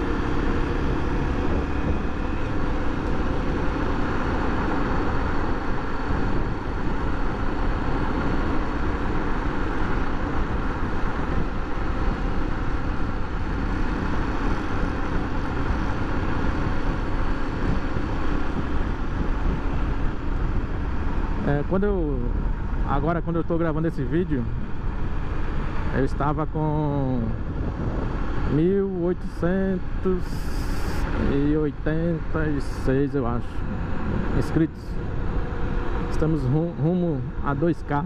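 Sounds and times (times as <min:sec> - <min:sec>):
wind and road noise: 0:00.0 - 0:38.0.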